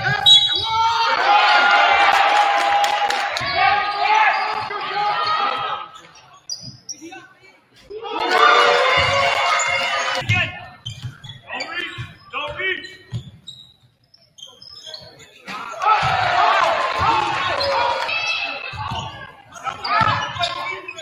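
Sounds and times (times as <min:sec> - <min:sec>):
people shouting: 0:00.0 - 0:05.8, 0:07.9 - 0:10.2, 0:15.6 - 0:19.1.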